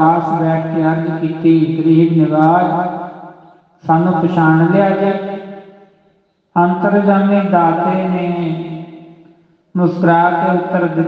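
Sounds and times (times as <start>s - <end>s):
man chanting: 3.8s - 5.4s, 6.6s - 8.7s.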